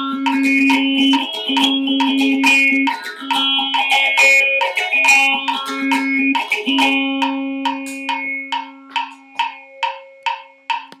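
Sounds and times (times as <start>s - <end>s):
low lyre string note ringing: 0.0s - 10.9s
short woody lyre plucks: 0.0s - 11.0s.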